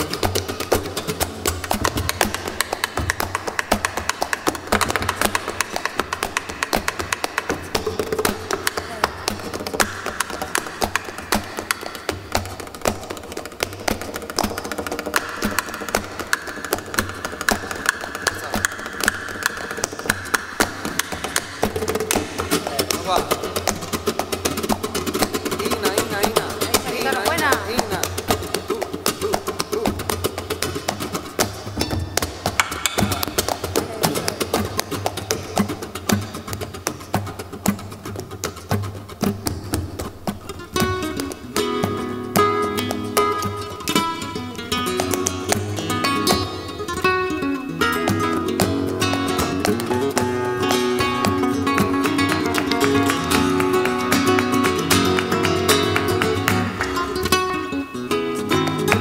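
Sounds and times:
flamenco guitar: 0.0 - 59.0
sharp handclaps: 0.0 - 59.0.

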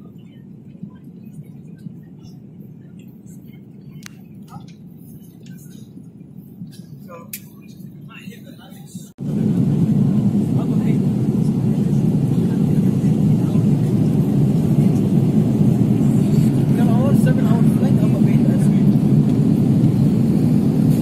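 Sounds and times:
jet engines roaring in cabin: 0.0 - 21.0.

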